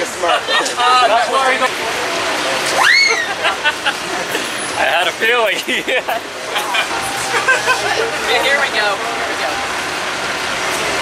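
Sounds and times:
road traffic rush: 0.0s - 11.0s.

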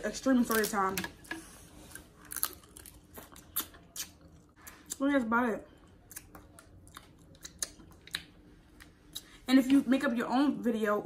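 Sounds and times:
person chewing: 1.7s - 5.0s, 5.8s - 9.4s.

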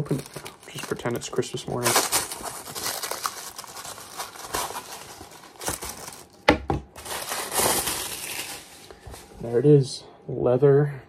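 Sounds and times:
cardboard packaging rustling: 0.0s - 9.5s.

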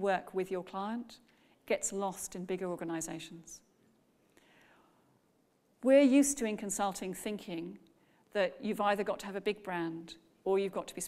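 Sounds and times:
woman speaking: 0.0s - 3.6s, 5.8s - 7.8s, 8.4s - 11.0s
faint breath: 1.3s - 1.6s, 4.3s - 5.2s, 7.9s - 8.3s.

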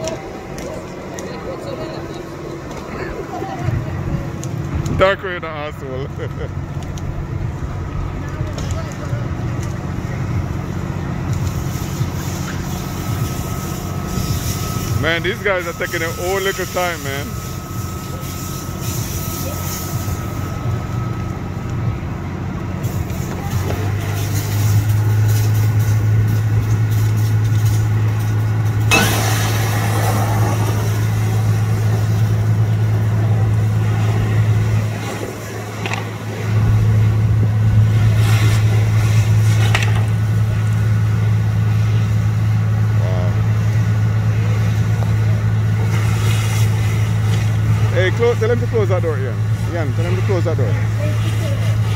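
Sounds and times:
diesel engine droning: 0.0s - 51.9s.

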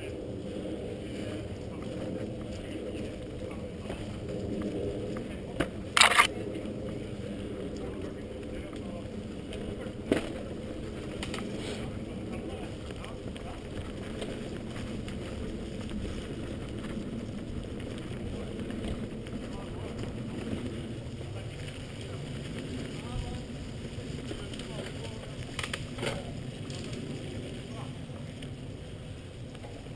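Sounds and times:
bike tyres rumbling on trail: 0.0s - 29.9s.

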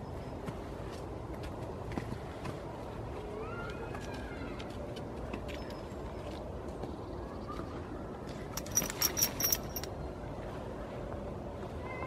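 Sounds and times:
metal buckles jingling: 8.6s - 10.0s.

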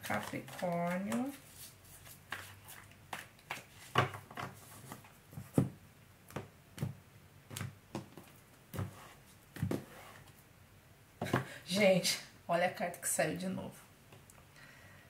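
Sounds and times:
cards being shuffled: 0.0s - 5.7s.

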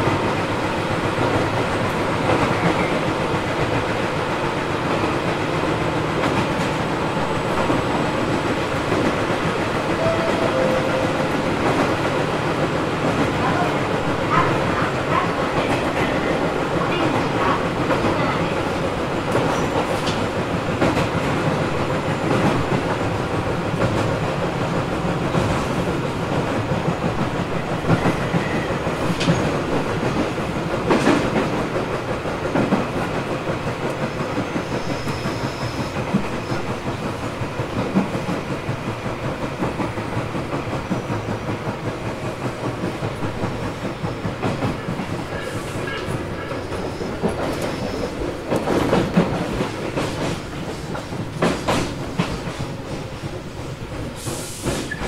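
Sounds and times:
electric train rumbling: 0.0s - 55.0s
rail-joint clicks: 0.9s - 55.0s.

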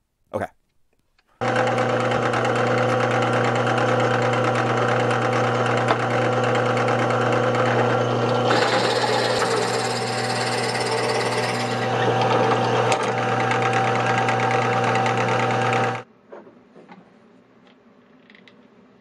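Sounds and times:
drill bit cutting wood: 1.4s - 16.0s
drill press motor humming: 1.4s - 16.1s.

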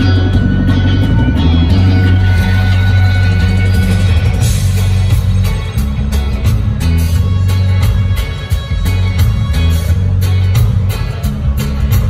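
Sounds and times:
electric bass guitar: 0.0s - 12.0s
live band playing loud music: 0.0s - 12.0s.

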